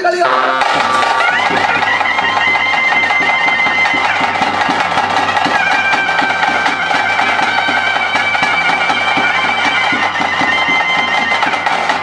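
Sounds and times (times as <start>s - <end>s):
fast drumming: 0.2s - 12.0s
reed pipe long notes: 0.2s - 12.0s.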